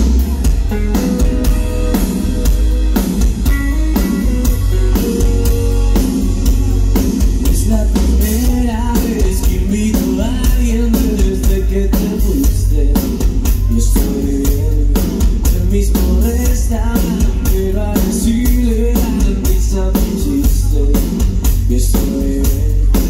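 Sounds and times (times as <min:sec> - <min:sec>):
live rock band playing: 0:00.0 - 0:23.0
male lead vocal: 0:07.4 - 0:23.0.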